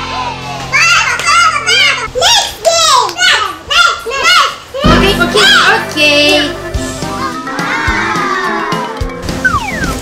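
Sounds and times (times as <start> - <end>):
music: 4.8 - 10.0.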